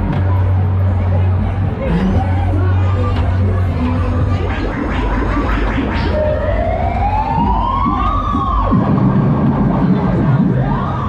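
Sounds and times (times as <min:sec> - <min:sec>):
steady low rumble: 0:00.0 - 0:11.0
siren wail rising tone: 0:06.1 - 0:09.8.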